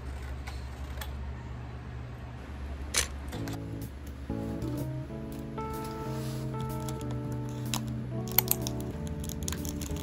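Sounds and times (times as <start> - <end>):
steady low hum: 0.0 - 10.0
scissors cutting paper: 6.6 - 10.0.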